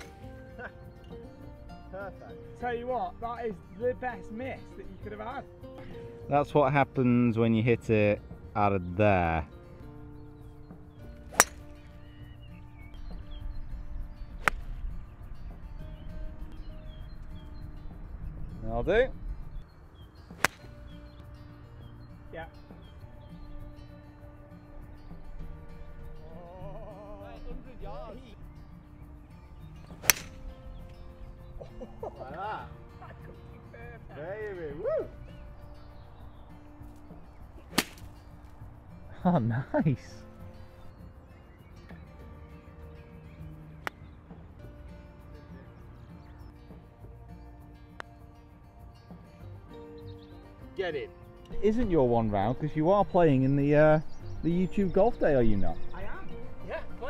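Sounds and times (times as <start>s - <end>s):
golf club striking ball: 0.0s - 0.3s, 11.3s - 12.4s, 14.4s - 14.8s, 20.3s - 20.9s, 29.9s - 31.0s, 37.6s - 38.6s.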